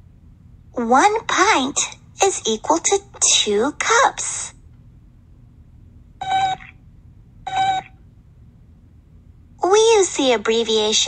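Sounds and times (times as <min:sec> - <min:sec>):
cartoon robot beeping: 0:06.2 - 0:06.7, 0:07.5 - 0:08.0.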